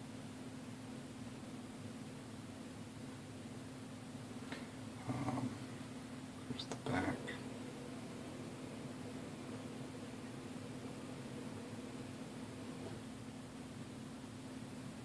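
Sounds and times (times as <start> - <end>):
steady background hum: 0.0 - 15.0
man murmuring: 5.0 - 5.6.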